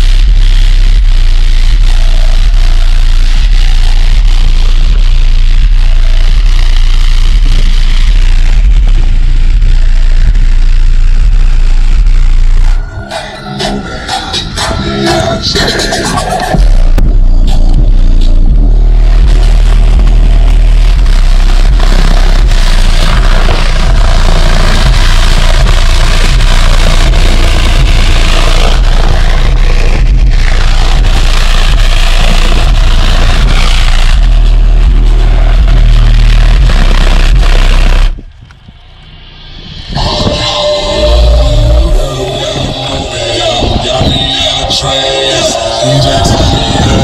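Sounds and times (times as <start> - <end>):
loud deep subwoofer bass: 0.0 - 47.0.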